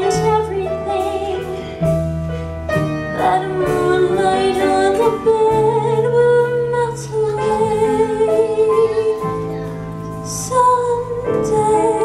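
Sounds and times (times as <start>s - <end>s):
woman singing ballad: 0.0s - 2.0s, 3.1s - 9.6s, 10.2s - 12.0s
soft instrumental accompaniment: 0.0s - 12.0s.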